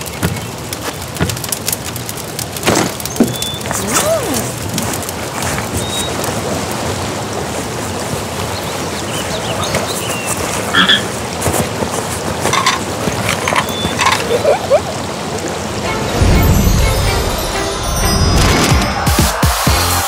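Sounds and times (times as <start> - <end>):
waterfall rushing: 0.0 - 20.0
frog croaking: 10.7 - 11.0.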